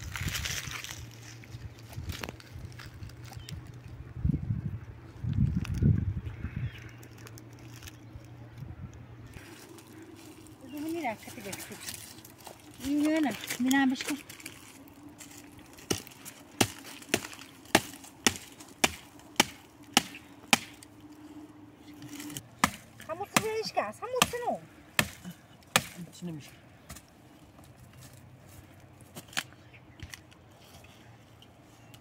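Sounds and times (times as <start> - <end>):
chopping strikes on branches: 15.8 - 20.9, 22.2 - 26.2.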